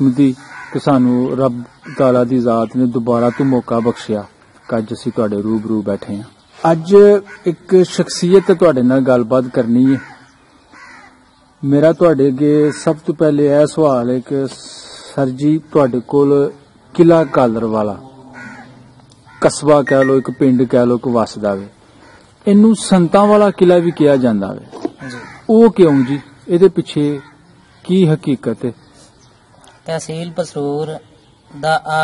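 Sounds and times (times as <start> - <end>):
man speaking: 0.0 - 10.0, 11.6 - 18.0, 19.4 - 21.8, 22.4 - 28.8, 29.8 - 32.0
men talking: 0.0 - 10.3, 11.6 - 18.2, 19.2 - 32.0
harsh bird call: 6.4 - 13.1, 15.6 - 22.5, 24.9 - 32.0.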